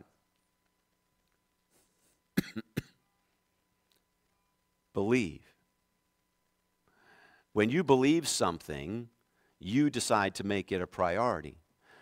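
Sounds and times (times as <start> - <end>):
person coughing: 2.4 - 3.0.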